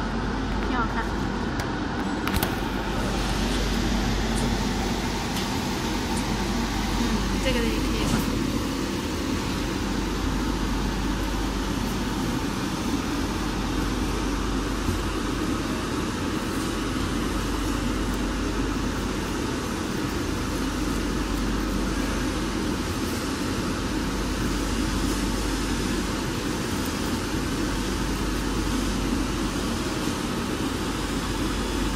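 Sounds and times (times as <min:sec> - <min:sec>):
machinery and fans whirring: 0:00.0 - 0:31.9.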